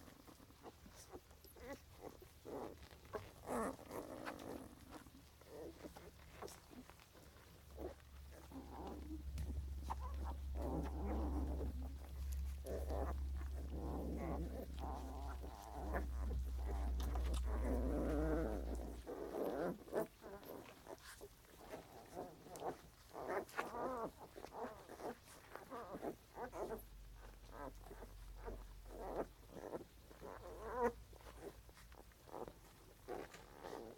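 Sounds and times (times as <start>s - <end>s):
puppies grunting and squeaking: 0.0s - 33.9s.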